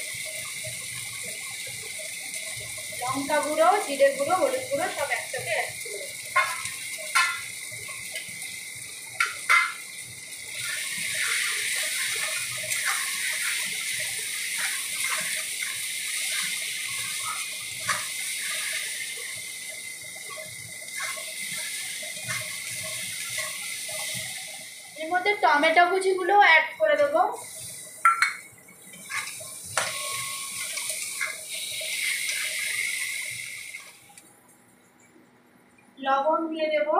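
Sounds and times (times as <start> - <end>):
onions sizzling in hot oil: 0.0 - 34.2.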